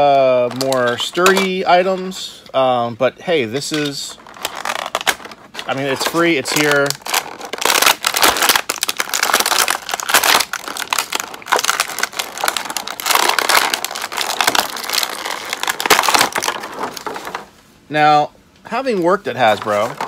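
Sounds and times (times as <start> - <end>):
plastic packaging crinkling: 0.0 - 2.3, 3.5 - 17.6, 18.9 - 20.0.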